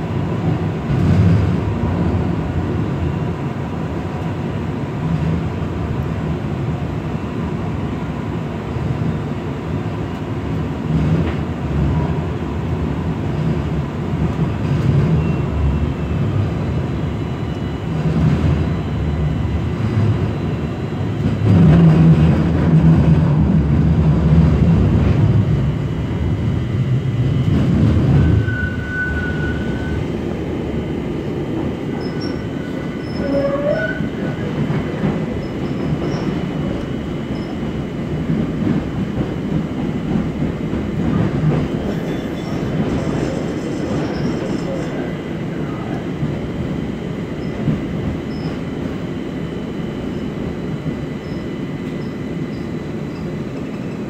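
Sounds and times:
rumble of train wheels: 0.0s - 54.0s
thin wheel squeals: 28.2s - 30.0s, 32.0s - 34.1s.

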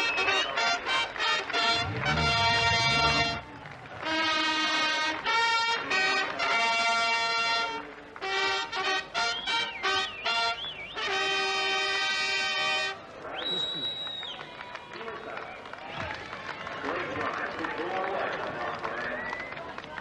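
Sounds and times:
crowd chattering and calling: 1.4s - 5.1s.

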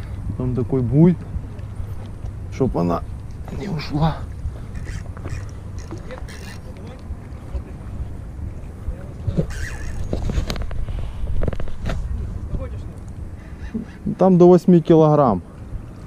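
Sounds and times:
wind rumbling on microphone: 0.0s - 14.2s, 15.2s - 16.0s
fishing reel clicking: 4.7s - 6.8s, 9.5s - 10.1s.

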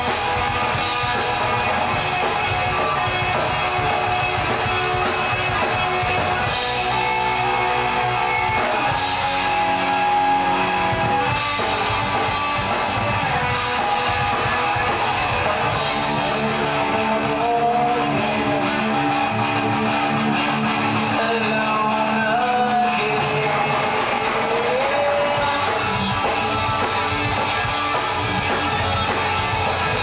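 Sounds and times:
drums: 0.0s - 30.0s
electric guitars: 0.0s - 30.0s.

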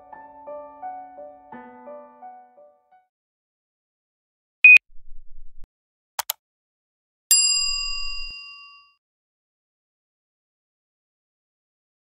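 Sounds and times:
bright metallic bell ding: 7.3s - 9.0s.

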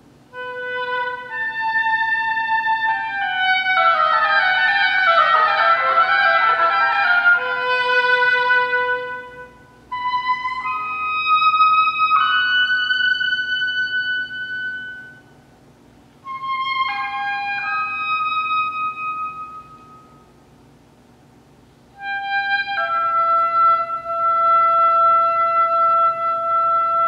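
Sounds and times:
solo woodwind playing: 0.3s - 15.6s, 16.2s - 20.4s, 21.9s - 27.0s.

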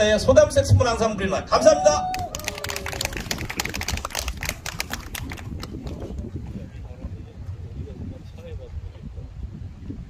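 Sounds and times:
audience clapping: 2.1s - 6.2s.

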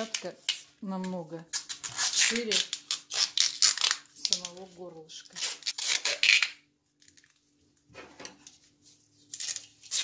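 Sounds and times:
adhesive tape crackling: 1.5s - 4.7s, 5.3s - 7.4s.

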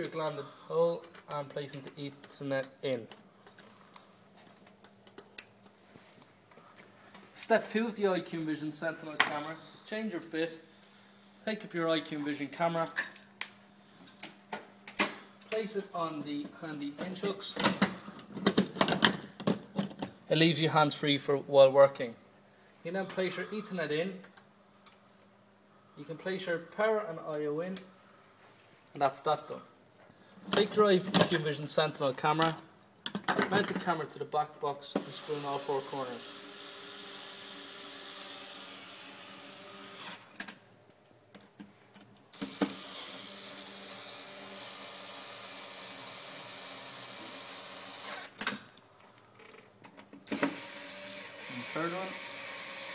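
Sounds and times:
cordless screwdriver running: 35.1s - 40.2s, 42.4s - 48.3s, 50.3s - 52.9s.

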